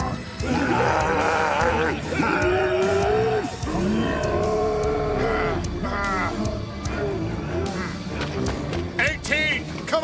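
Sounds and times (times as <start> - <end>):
strained yells: 0.0 - 6.5.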